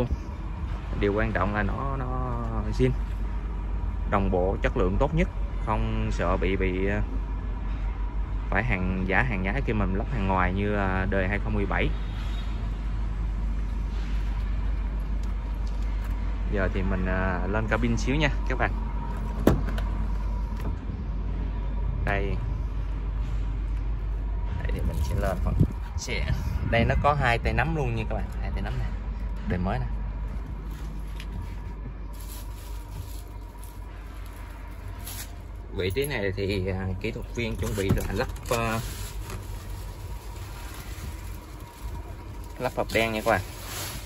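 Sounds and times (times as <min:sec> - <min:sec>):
steady low rumble: 0:12.7 - 0:44.0
truck door swinging open: 0:19.3 - 0:20.0.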